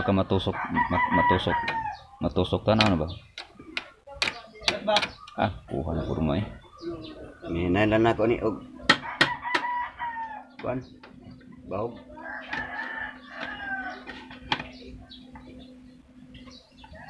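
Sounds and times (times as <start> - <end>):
rooster crowing: 0.0 - 2.1, 9.0 - 10.6, 12.1 - 14.4.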